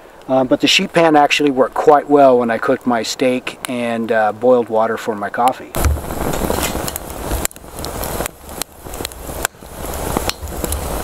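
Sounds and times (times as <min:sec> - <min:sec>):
twig fire crackling: 0:00.0 - 0:11.0
low rushing noise: 0:05.8 - 0:11.0.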